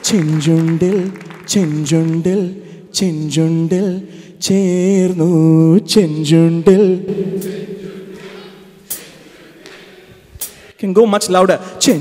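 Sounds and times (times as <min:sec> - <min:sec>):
voices singing unaccompanied: 0:00.0 - 0:10.7
low hall background: 0:00.0 - 0:12.0.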